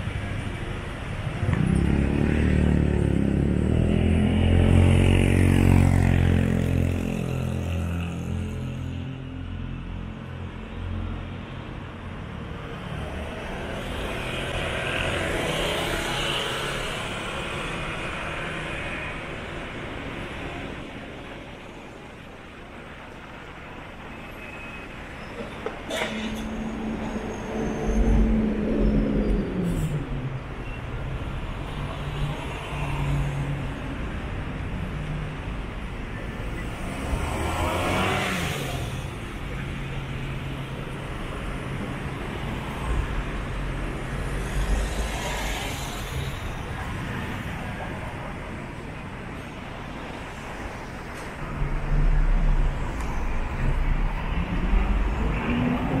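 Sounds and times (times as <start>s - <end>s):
cars passing: 0.0s - 24.1s, 25.0s - 56.0s.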